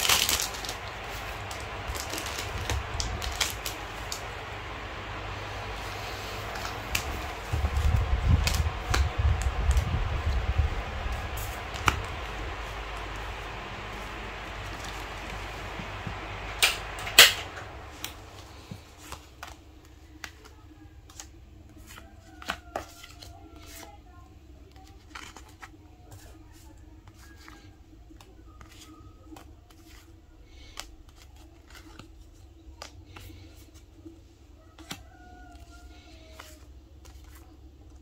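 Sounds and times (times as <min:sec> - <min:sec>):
vinyl stickers rustling: 0:00.0 - 0:38.0.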